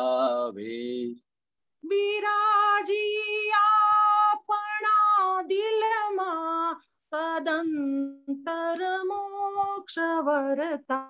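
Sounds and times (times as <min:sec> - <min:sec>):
woman singing unaccompanied: 0:01.8 - 0:11.0.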